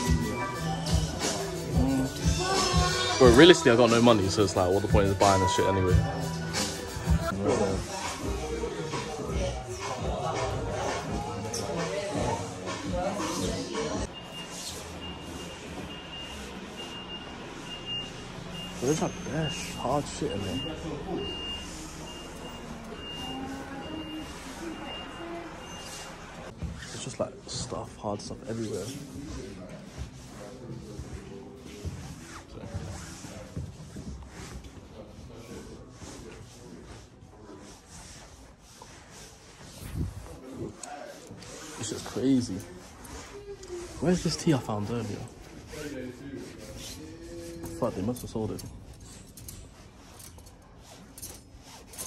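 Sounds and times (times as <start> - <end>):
clothes rustling: 10.1 - 52.0
high electronic beeps: 14.0 - 26.2.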